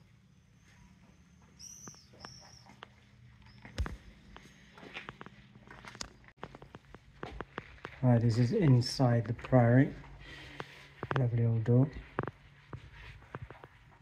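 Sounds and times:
faint footsteps: 0:00.0 - 0:14.0.

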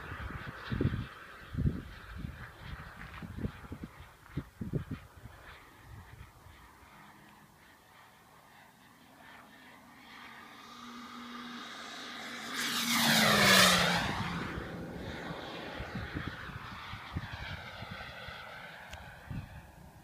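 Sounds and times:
model jet engine fly-by: 0:00.0 - 0:20.0.

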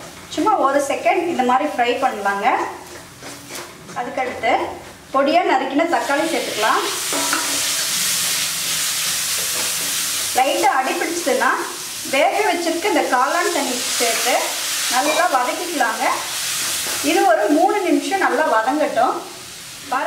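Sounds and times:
wooden spatula stirring: 0:02.1 - 0:05.0
food sizzling in hot oil: 0:05.8 - 0:20.0.

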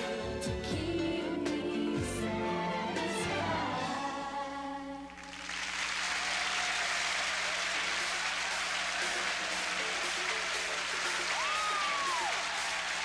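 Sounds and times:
person singing: 0:00.0 - 0:05.2
audience applauding: 0:05.1 - 0:13.0.

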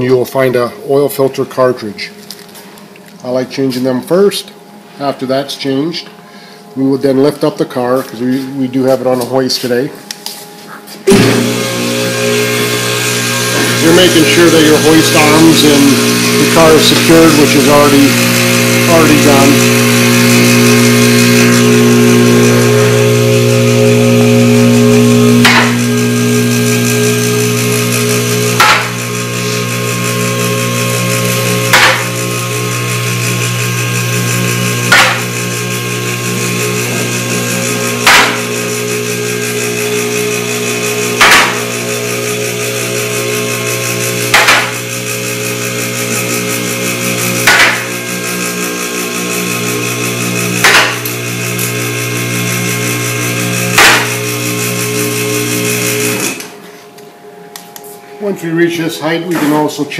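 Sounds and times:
electric pump motor humming: 0:01.6 - 0:59.9.

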